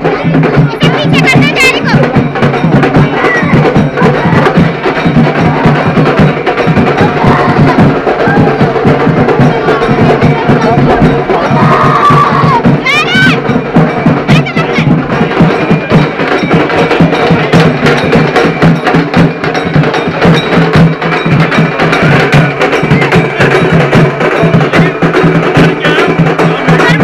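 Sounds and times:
loud music with fast beat: 0:00.0 - 0:27.0.

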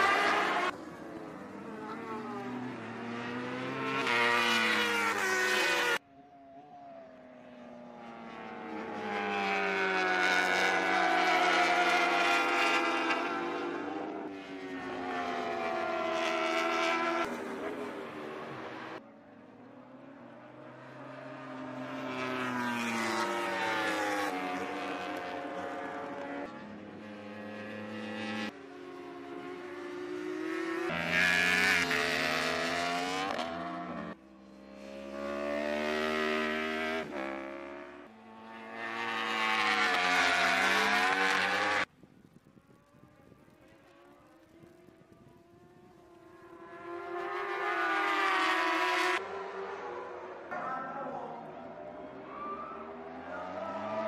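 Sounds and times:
racing motorcycles revving past: 0:00.0 - 0:06.0, 0:07.6 - 0:19.0, 0:20.0 - 0:42.0, 0:43.1 - 0:54.0.

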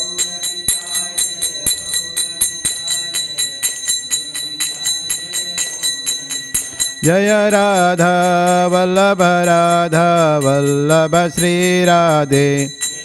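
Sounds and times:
hand cymbals struck in rhythm: 0:00.0 - 0:13.0.

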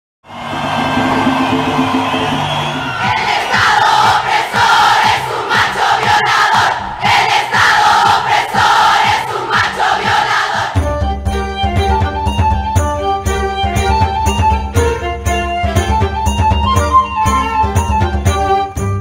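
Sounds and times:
protest crowd chanting: 0:00.4 - 0:10.8.

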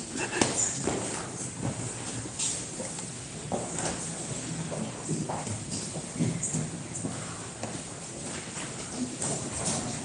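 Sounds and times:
knocks and shuffling on benches: 0:00.0 - 0:10.0.

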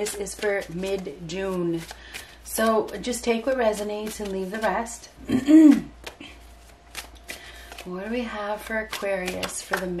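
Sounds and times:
cards being shuffled: 0:00.0 - 0:05.0, 0:05.7 - 0:10.0.

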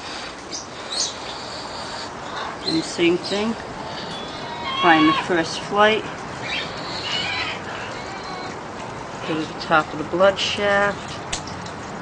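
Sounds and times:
parrot making soft calls: 0:03.9 - 0:05.4, 0:06.4 - 0:08.6.

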